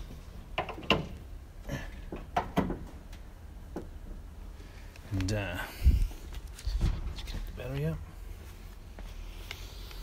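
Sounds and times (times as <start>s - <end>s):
light knocks and clunks: 2.0s - 4.2s.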